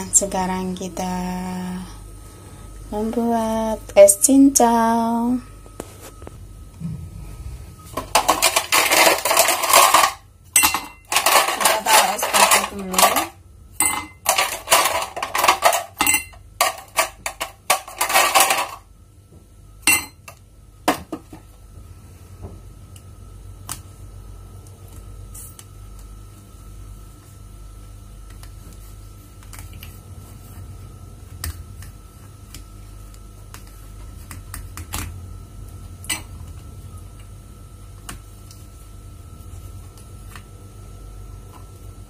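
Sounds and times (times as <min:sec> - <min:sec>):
ice cubes clattering into a glass: 0:08.0 - 0:13.3, 0:16.6 - 0:18.8.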